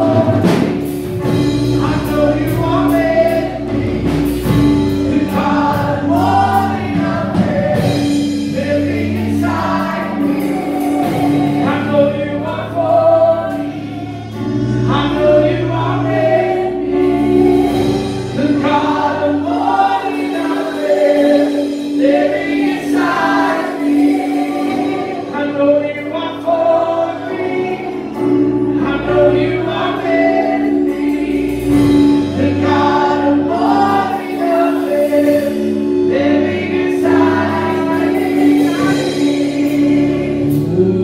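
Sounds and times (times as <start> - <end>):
electric keyboard chords: 0.0 - 41.0
woman and man singing: 0.0 - 41.0.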